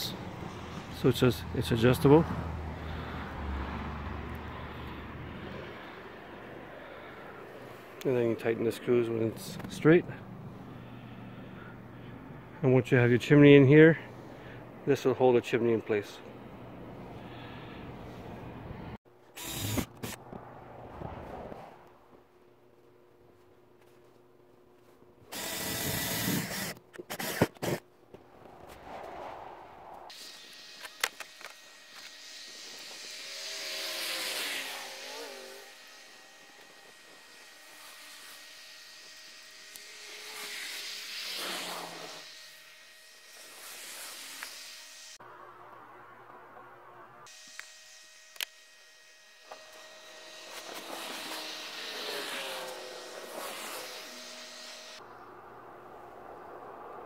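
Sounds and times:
vehicles passing by: 0:00.0 - 0:12.6, 0:20.2 - 0:22.1, 0:28.1 - 0:30.1, 0:55.0 - 0:57.0
cordless drill drilling metal: 0:19.4 - 0:20.2, 0:25.3 - 0:27.8, 0:30.1 - 0:45.2, 0:47.3 - 0:55.0.

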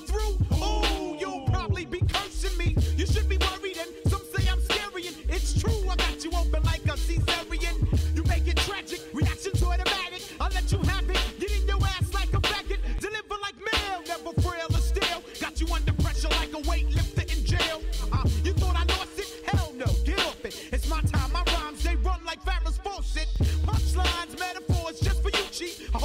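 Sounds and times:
rapping over a beat: 0:00.0 - 0:26.0
deep bass notes: 0:00.1 - 0:03.5, 0:04.1 - 0:08.7, 0:09.6 - 0:13.0, 0:14.7 - 0:15.0, 0:15.6 - 0:19.0, 0:19.8 - 0:24.2, 0:25.0 - 0:26.0.

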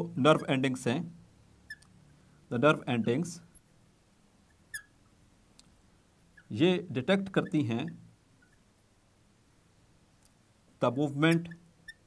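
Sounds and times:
marker squeaking on glass: 0:01.6 - 0:01.9, 0:04.4 - 0:05.0, 0:06.3 - 0:06.6, 0:07.2 - 0:08.7, 0:11.2 - 0:12.0.

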